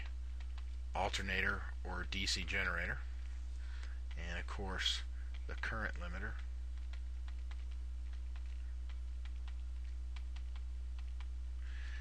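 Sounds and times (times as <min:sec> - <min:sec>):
computer mouse clicking: 0:00.0 - 0:00.8, 0:05.3 - 0:11.3
low electrical hum: 0:00.0 - 0:12.0.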